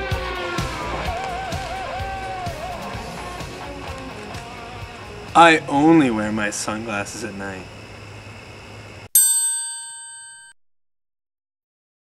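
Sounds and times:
bright metallic ding: 0:09.1 - 0:10.6.

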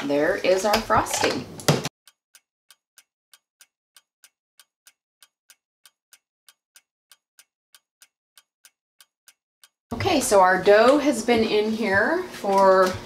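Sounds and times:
clock ticking: 0:02.1 - 0:13.0.

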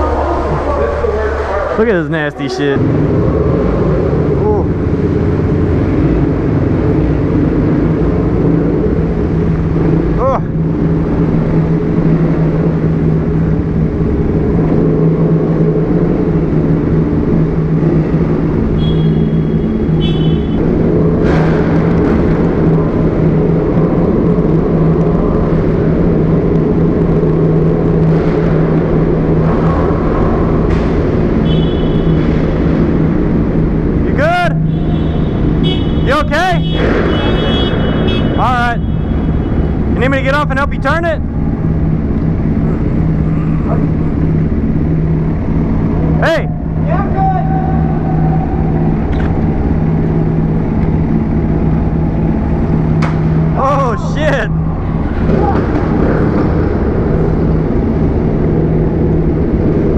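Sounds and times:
motorcycle engines droning: 0:00.0 - 0:59.9.

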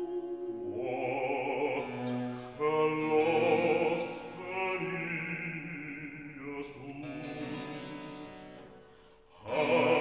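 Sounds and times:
person singing: 0:00.0 - 0:07.7, 0:09.3 - 0:10.0.

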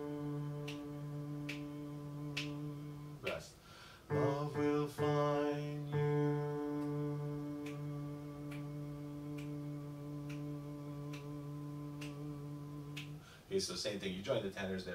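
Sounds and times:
man singing low note: 0:00.0 - 0:03.5, 0:04.1 - 0:13.3
soft ticks: 0:01.4 - 0:01.7, 0:07.6 - 0:12.3, 0:12.9 - 0:13.2
keyboard: 0:04.1 - 0:11.3.

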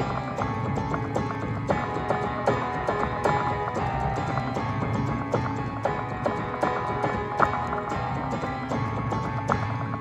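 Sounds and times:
instrumental pop backing track: 0:00.0 - 0:10.0.

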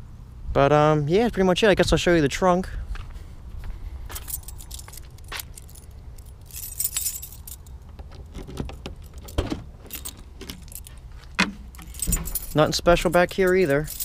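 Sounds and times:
keyring jangling: 0:04.1 - 0:14.0
lock clicking: 0:07.8 - 0:12.6.

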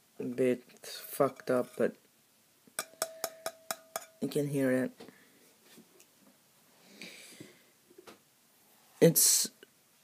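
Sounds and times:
fingertip taps on metal canister: 0:02.8 - 0:04.2.

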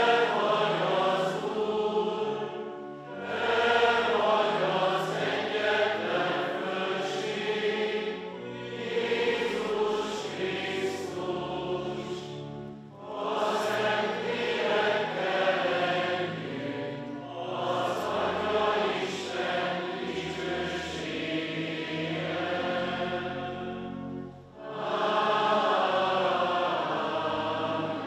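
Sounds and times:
choir singing a liturgical chant: 0:00.0 - 0:28.0.

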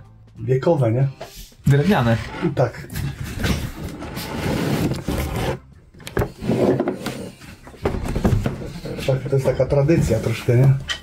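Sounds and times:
wooden box scraping on counter: 0:01.7 - 0:10.7.

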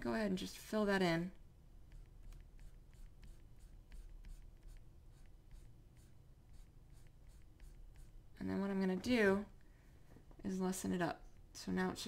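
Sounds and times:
stylus scratching on tablet: 0:01.8 - 0:09.2.

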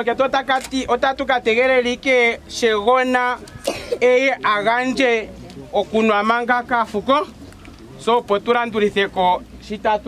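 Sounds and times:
man speaking loudly: 0:00.0 - 0:07.4.

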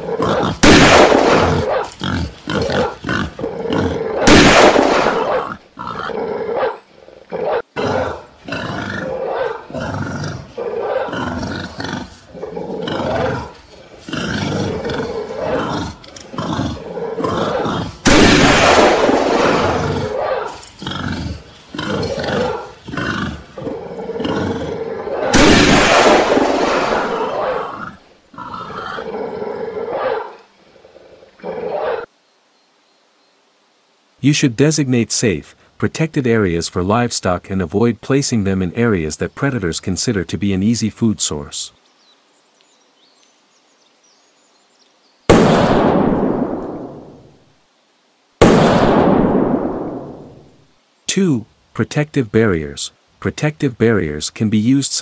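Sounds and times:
large animal roaring and growling: 0:00.0 - 0:32.1.

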